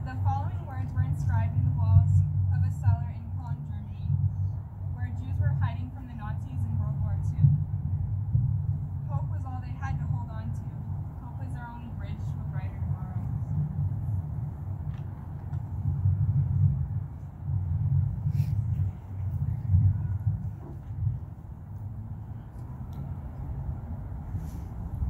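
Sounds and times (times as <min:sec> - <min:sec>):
low rumble: 0:00.0 - 0:25.0.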